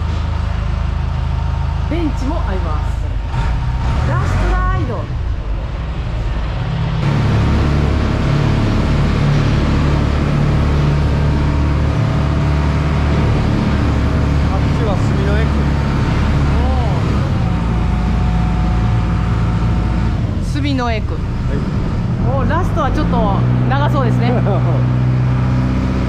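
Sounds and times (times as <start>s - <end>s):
boat engine droning: 0.0s - 26.0s.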